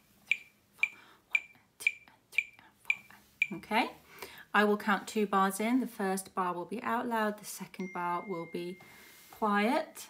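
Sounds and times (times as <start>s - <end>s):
metronome ticking: 0.3s - 3.6s.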